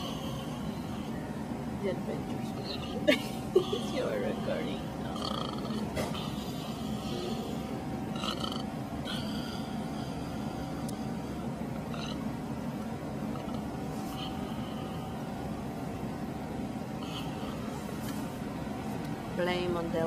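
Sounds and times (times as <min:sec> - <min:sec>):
airport terminal rumbling drone: 0:00.0 - 0:20.0
faint steady hum: 0:00.0 - 0:20.0.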